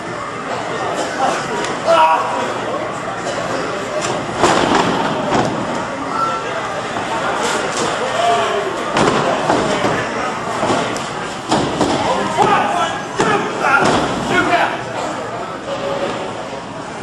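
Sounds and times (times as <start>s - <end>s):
crowd shouting: 1.8s - 2.6s, 11.6s - 14.9s
bodies thudding on ring canvas: 8.9s - 14.4s.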